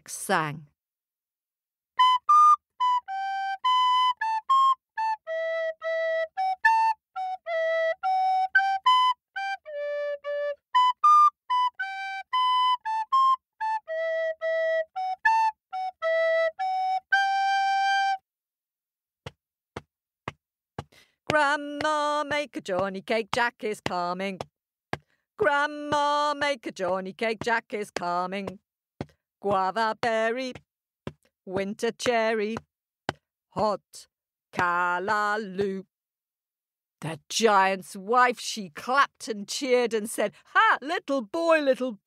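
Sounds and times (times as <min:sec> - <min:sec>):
solo flute melody: 0:02.0 - 0:18.3
person singing: 0:21.3 - 0:24.4, 0:25.4 - 0:28.6, 0:29.4 - 0:30.6, 0:34.6 - 0:35.9.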